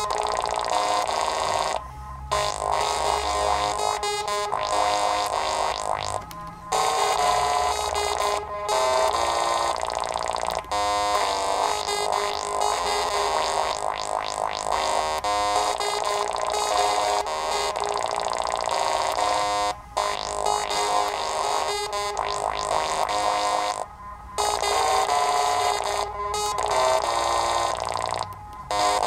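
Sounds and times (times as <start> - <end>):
synthesizer notes: 0.0 - 29.0.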